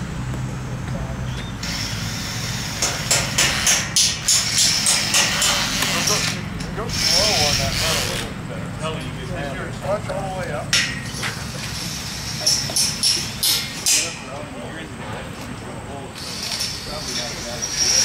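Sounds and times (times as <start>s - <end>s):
sharp knocks or clanks: 2.8s - 5.9s, 10.7s - 11.4s
people talking: 5.7s - 18.0s
low rumble: 6.4s - 10.1s.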